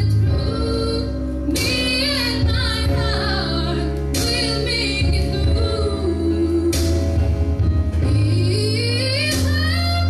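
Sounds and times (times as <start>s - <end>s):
instrumental accompaniment: 0.0s - 10.0s
woman singing a pop ballad: 0.0s - 10.0s.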